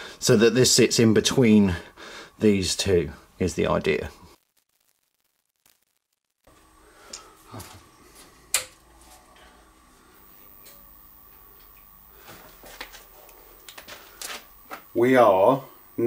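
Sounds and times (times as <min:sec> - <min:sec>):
faint electrical hum: 0:00.0 - 0:05.0, 0:06.5 - 0:16.0
thin high whine: 0:00.0 - 0:16.0
breaker switch clicks: 0:08.5 - 0:08.8.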